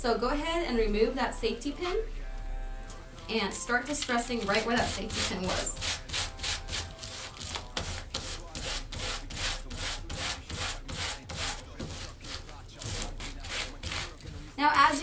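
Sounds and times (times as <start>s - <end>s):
sandpaper rubbing denim: 4.1s - 15.0s.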